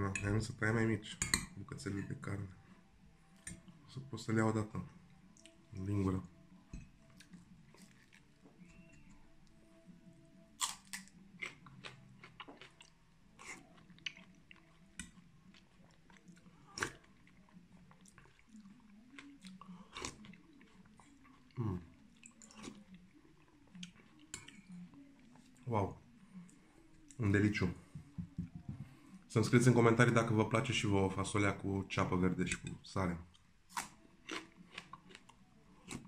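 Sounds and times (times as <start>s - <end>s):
person chewing: 10.6s - 25.6s, 33.7s - 36.0s.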